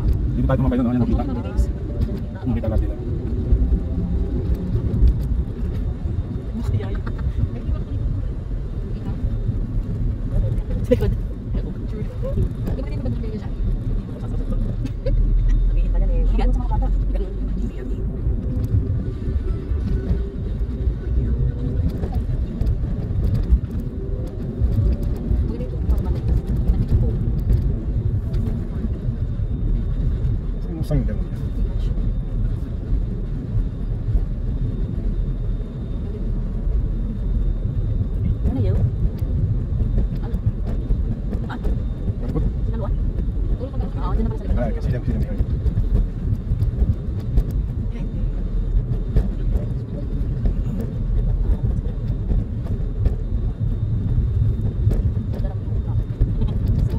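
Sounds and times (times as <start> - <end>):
car road and engine rumble: 0.0 - 56.9.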